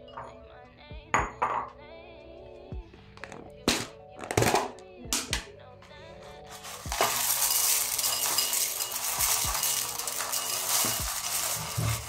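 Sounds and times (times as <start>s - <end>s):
cornflakes poured into a ceramic bowl: 6.5s - 12.0s.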